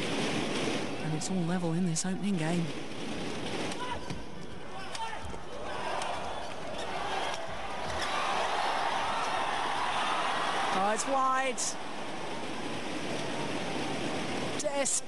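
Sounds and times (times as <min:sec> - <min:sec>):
crowd noise: 0:00.0 - 0:14.7.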